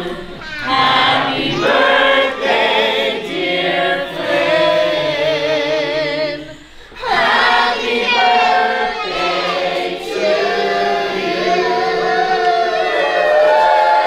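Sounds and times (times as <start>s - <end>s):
choir singing: 0.0s - 14.0s.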